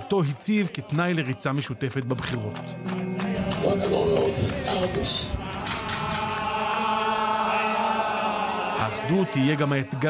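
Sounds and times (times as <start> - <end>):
chant-like singing: 3.1 - 10.0.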